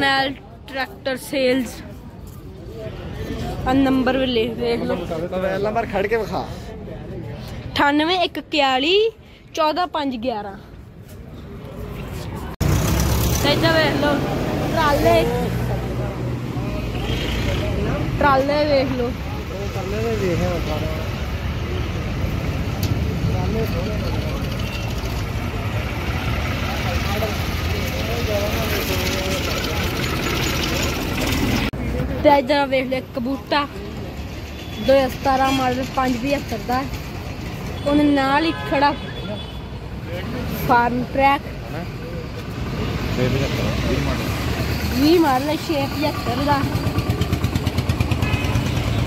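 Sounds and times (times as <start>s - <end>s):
vehicle engines rumbling: 0.0s - 49.0s.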